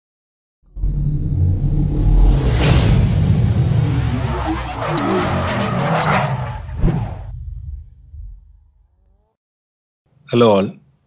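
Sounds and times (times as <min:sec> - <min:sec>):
loud deep rumble: 0:00.6 - 0:09.0.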